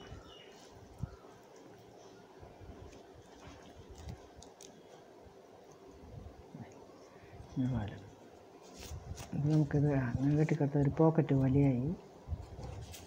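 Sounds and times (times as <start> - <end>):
leaves rustling: 0.0 - 5.1, 8.5 - 13.0
light clicks of leaves folding: 2.7 - 5.9, 7.6 - 13.0.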